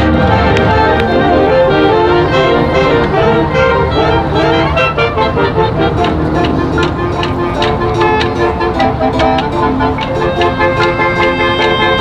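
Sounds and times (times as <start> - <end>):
brass and winds sustained chords: 0.0 - 12.0.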